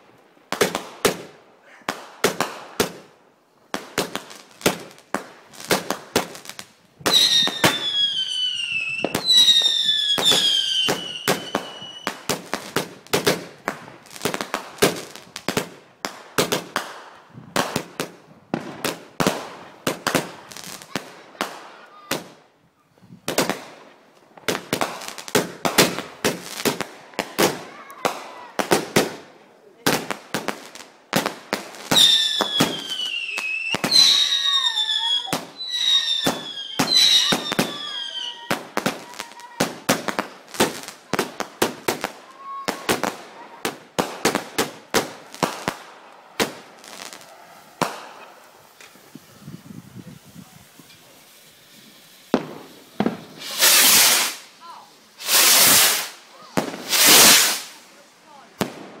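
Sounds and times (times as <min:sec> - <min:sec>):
fireworks bangs and crackles: 0:00.0 - 0:59.0
fireworks whistling: 0:03.9 - 0:15.8, 0:29.9 - 0:59.0.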